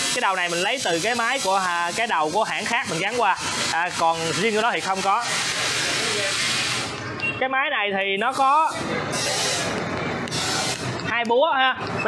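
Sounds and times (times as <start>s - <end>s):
compressed air hissing: 3.2s - 7.0s, 8.4s - 11.0s.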